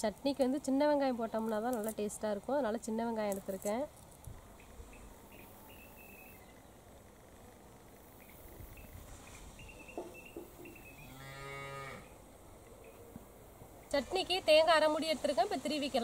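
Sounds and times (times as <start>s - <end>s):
cow mooing: 11.0s - 12.1s.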